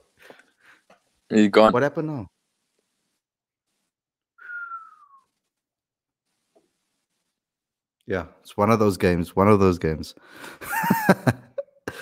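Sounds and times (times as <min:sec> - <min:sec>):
man whistling a sliding note: 0:04.4 - 0:05.3.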